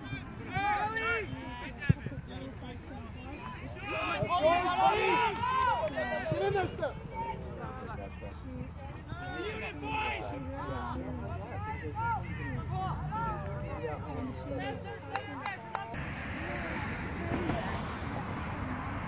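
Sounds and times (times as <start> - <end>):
voices talking and calling out: 0.0 - 19.0.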